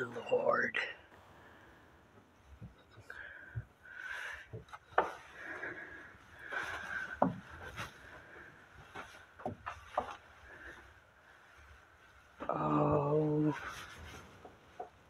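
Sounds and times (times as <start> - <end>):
footsteps on wooden floor: 6.4 - 8.2.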